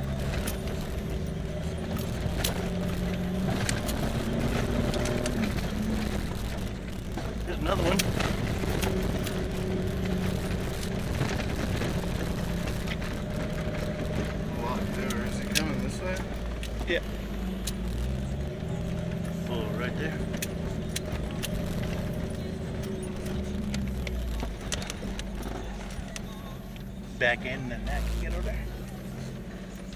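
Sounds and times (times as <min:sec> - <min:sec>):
body and suspension knocks and rattles: 0:00.0 - 0:28.9
vehicle engine running: 0:00.0 - 0:29.9.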